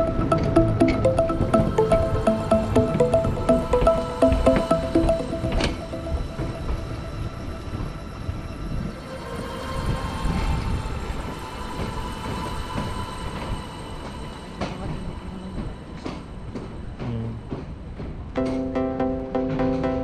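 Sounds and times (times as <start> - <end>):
thin sustained whine: 0.0 - 17.0.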